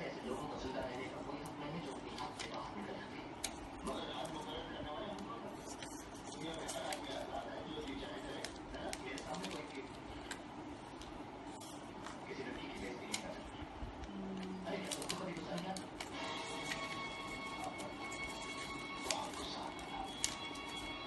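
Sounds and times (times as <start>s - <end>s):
paper being folded and creased: 0.2s - 13.4s, 14.6s - 21.0s.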